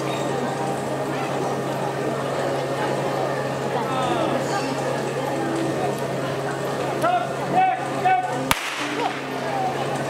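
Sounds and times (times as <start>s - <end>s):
starting pistol crack: 8.5s - 9.5s.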